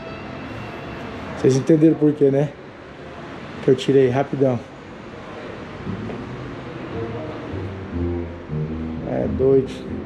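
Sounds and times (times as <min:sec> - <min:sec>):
band holding notes: 0:05.8 - 0:10.0
low bass notes: 0:05.8 - 0:10.0.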